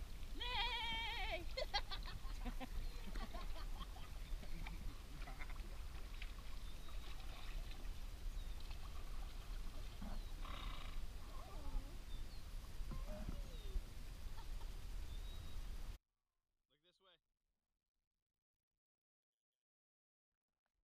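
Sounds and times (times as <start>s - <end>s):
paddles dipping and splashing: 0.0s - 15.6s
water lapping: 0.0s - 15.7s
faint wavering calls: 9.9s - 15.6s.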